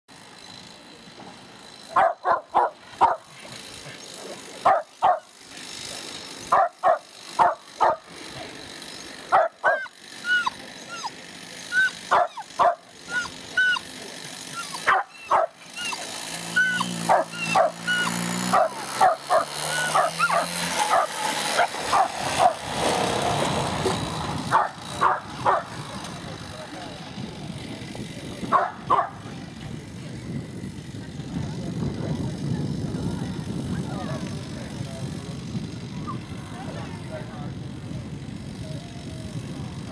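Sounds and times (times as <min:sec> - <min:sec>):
dog barking excitedly: 0:01.9 - 0:03.5, 0:04.6 - 0:05.3, 0:06.5 - 0:08.1, 0:09.3 - 0:13.9, 0:14.6 - 0:22.7, 0:24.5 - 0:25.7, 0:28.5 - 0:29.2
dog whining: 0:09.4 - 0:22.5.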